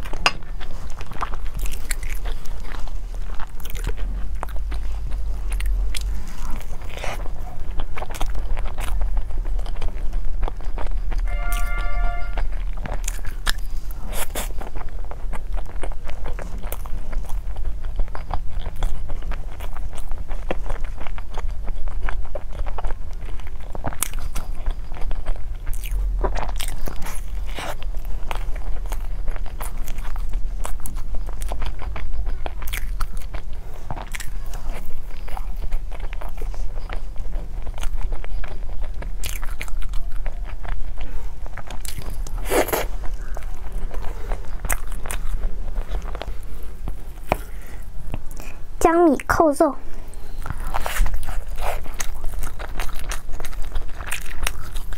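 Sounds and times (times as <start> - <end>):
low hum: 0.0 - 20.5
chewing: 0.0 - 54.9.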